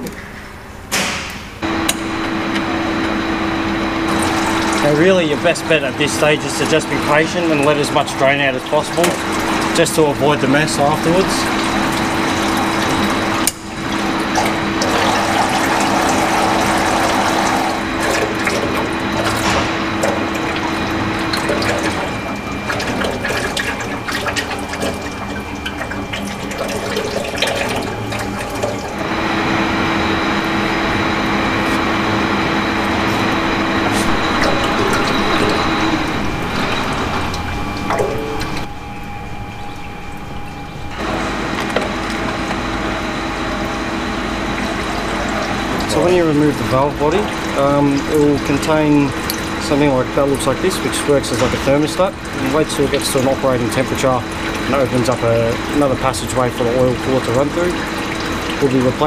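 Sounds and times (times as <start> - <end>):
steady machine hum: 0.0 - 59.0
fluid pouring in a stream: 4.1 - 29.0, 44.6 - 59.0.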